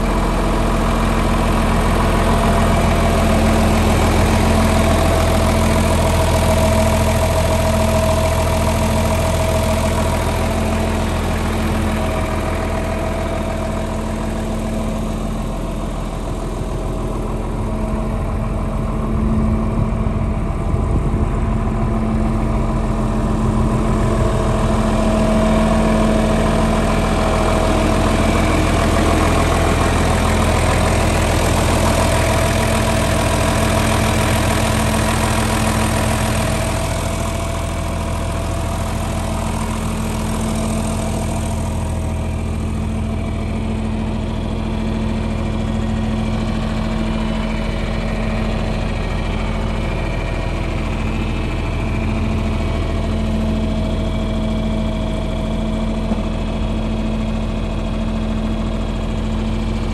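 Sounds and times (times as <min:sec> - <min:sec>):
tractor engine idling: 0:00.0 - 0:59.9.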